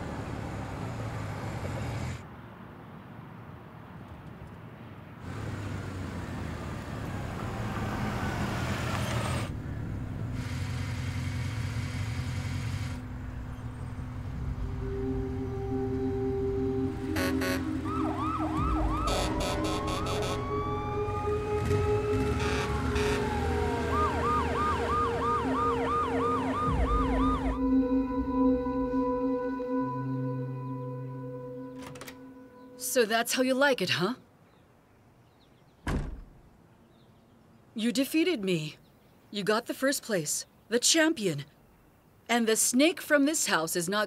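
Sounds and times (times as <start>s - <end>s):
vehicle engine rumble: 0.0s - 2.4s, 4.1s - 29.0s
siren wailing and yelping: 14.8s - 31.7s.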